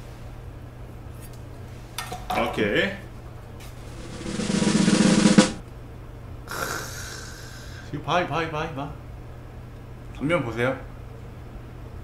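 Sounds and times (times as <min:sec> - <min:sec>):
snare drum roll: 0:03.8 - 0:05.6.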